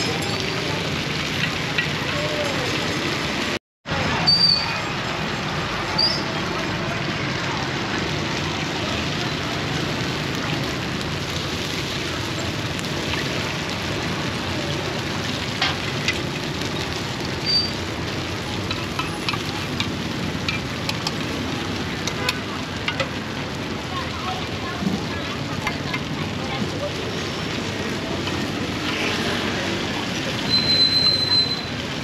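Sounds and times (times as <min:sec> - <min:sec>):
batter sizzling in pans: 0:05.1 - 0:32.0.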